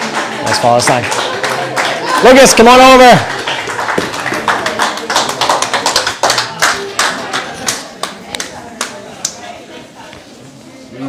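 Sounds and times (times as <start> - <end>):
murmur of voices: 0.0 - 11.0
hand claps: 3.2 - 9.4.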